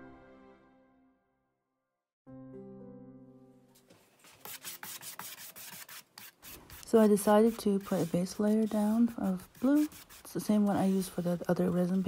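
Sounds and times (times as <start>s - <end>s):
paintbrush strokes on wood: 4.0s - 12.0s.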